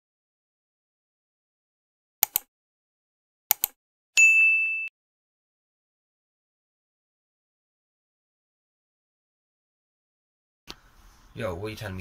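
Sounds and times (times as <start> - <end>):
notification bell ding: 4.2 - 4.9.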